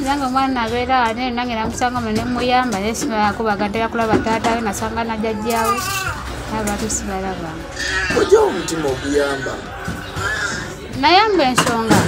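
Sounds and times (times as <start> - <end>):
voices talking: 0.2 - 12.0.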